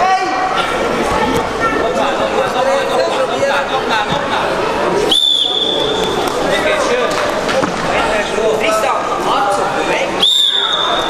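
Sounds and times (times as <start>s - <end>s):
crowd chatter in a sports hall: 0.0s - 11.0s
referee's whistle blast: 5.1s - 5.9s, 10.2s - 11.0s.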